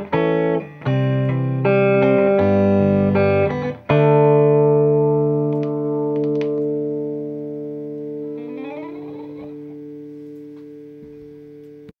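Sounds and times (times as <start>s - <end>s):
finger-picked electric guitar: 0.0s - 11.9s.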